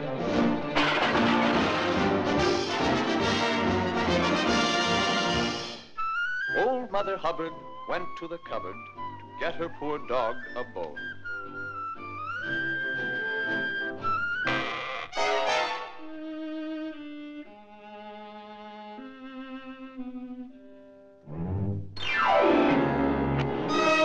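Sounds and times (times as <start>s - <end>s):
orchestral strings music: 0.0s - 24.0s.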